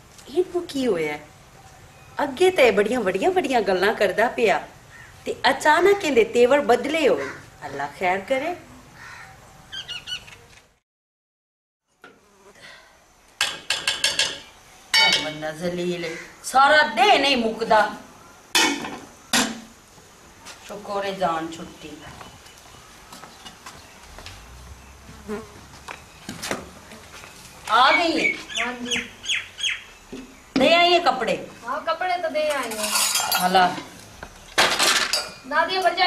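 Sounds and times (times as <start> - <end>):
high bird chirps: 9.7 - 10.4, 27.9 - 30.4
housefly buzzing: 12.1 - 12.6, 24.1 - 26.0.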